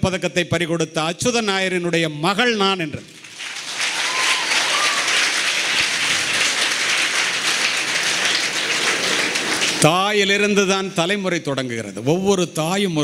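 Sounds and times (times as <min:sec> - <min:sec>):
audience applauding: 0:03.1 - 0:10.4.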